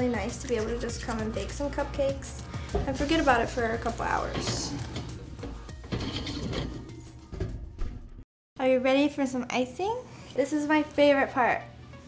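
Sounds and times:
background music: 0.0s - 12.0s
muffin tin sliding onto oven rack: 4.2s - 7.1s.

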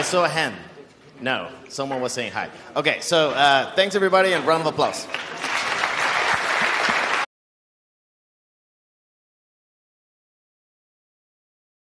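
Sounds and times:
audience applauding: 5.0s - 7.3s.

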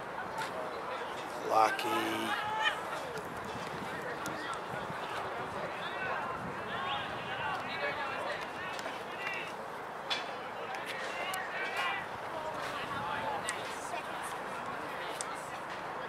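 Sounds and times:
distant chatter and calls: 0.0s - 16.0s
outdoor background noise: 0.0s - 16.0s.

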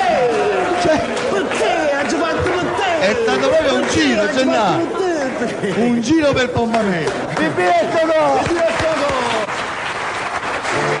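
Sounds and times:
audience applauding: 0.0s - 4.9s, 6.7s - 11.0s.

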